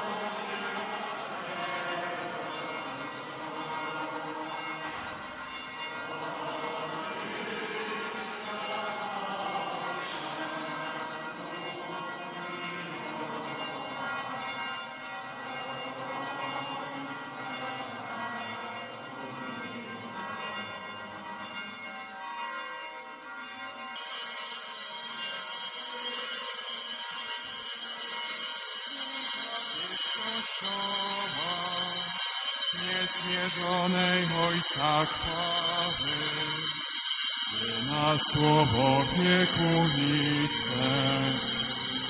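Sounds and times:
church hymn singing: 0.0 - 42.0.

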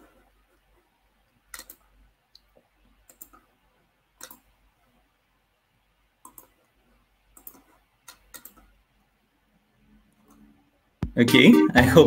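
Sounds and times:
computer mouse clicking: 1.5 - 3.5, 4.2 - 4.5, 6.2 - 8.8.

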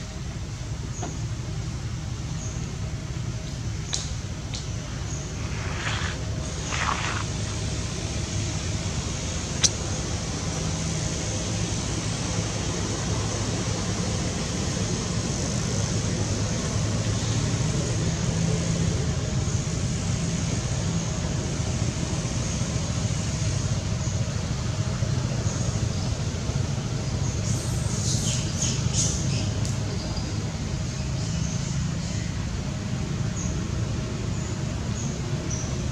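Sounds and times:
distant traffic rumble: 0.0 - 35.9.

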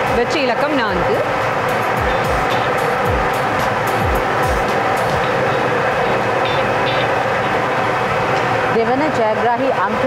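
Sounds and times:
lottery machine running: 0.0 - 10.0.

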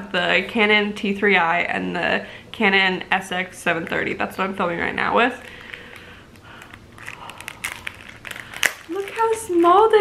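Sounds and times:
plastic bag crinkling: 5.4 - 10.0.

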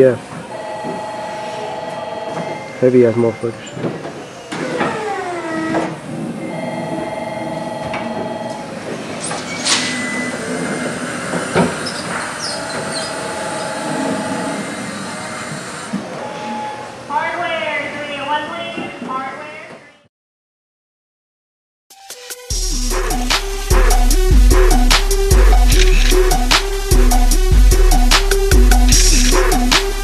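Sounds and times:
machine hum: 0.0 - 17.1, 22.5 - 30.0
pulsing electronic warning tone: 0.5 - 3.4, 6.4 - 8.8, 12.4 - 15.6, 16.2 - 17.0, 22.8 - 30.0.

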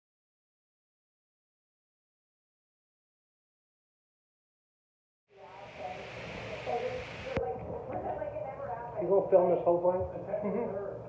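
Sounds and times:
indistinct talking: 5.3 - 11.0
steady hiss: 5.4 - 7.4.

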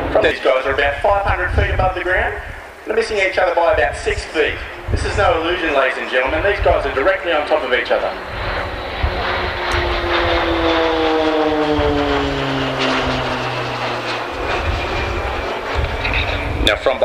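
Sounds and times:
turboprop planes passing overhead: 0.0 - 17.0.

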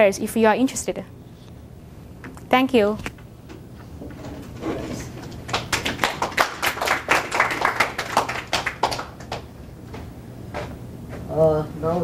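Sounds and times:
small audience clapping: 5.0 - 10.0.

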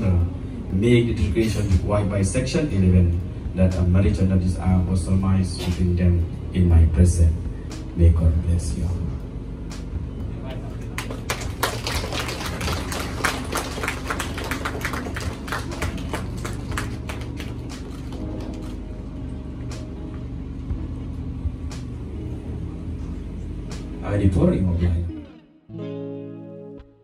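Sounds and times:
low steady hum: 0.0 - 25.4
audience clapping: 10.7 - 18.8.

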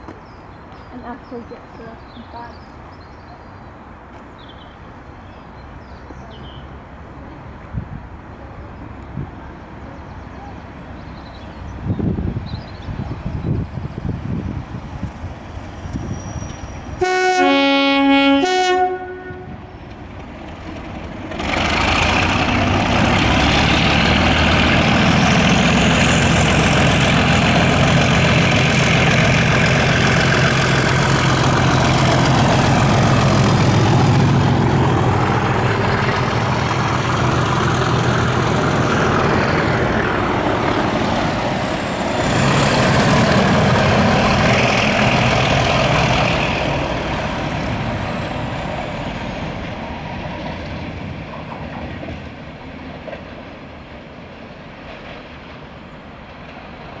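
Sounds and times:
two-tone locomotive horn: 17.0 - 19.7.

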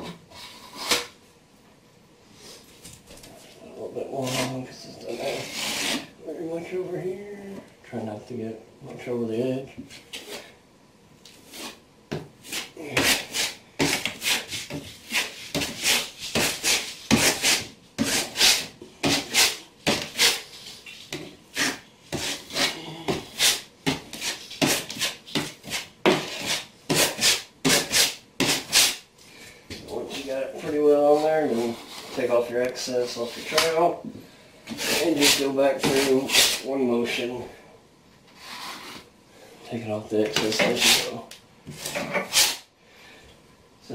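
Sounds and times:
trowel scraping membrane: 4.2 - 6.1, 12.4 - 29.0, 34.7 - 36.7, 40.4 - 42.7.

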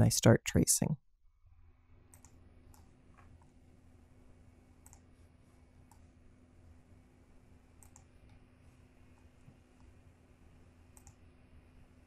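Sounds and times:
faint room hum: 0.0 - 12.0
computer mouse clicks: 2.1 - 3.5, 4.8 - 5.1, 5.8 - 6.1, 7.8 - 8.4, 10.9 - 11.2.

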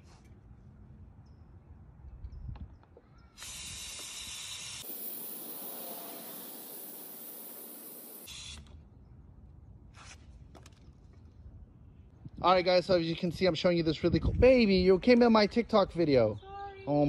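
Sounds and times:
gas hissing from a spray can: 3.4 - 8.7.

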